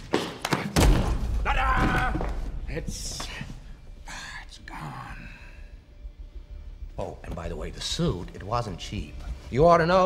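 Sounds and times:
man whispering: 0:03.3 - 0:05.7.

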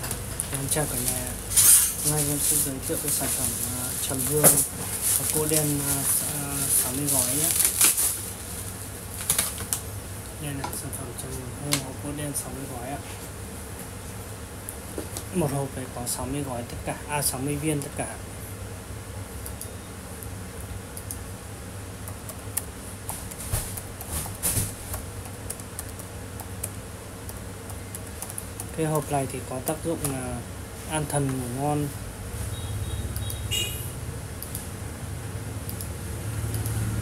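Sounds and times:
plastic wrapping rustling: 0:00.4 - 0:09.9.

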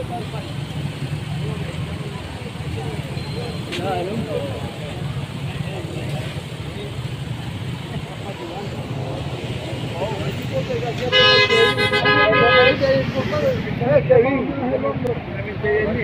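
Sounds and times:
low street noise: 0:00.0 - 0:16.0
vehicle horn blast: 0:11.1 - 0:12.8.

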